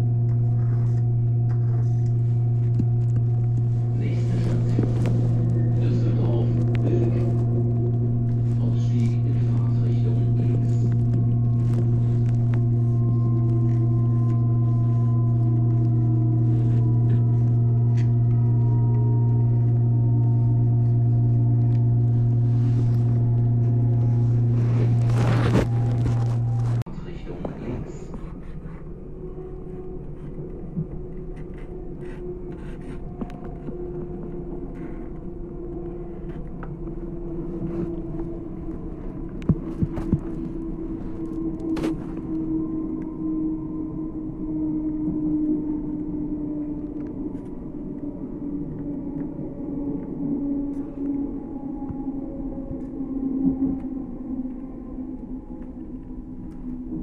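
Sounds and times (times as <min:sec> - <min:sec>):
train carriage electric hum: 0:00.0 - 0:55.6
train rumble from inside carriage: 0:03.6 - 0:19.6, 0:21.7 - 0:28.8.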